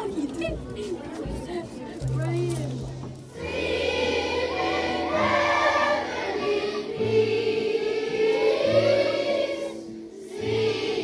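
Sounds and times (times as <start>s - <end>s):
children's choir singing: 3.3s - 11.0s.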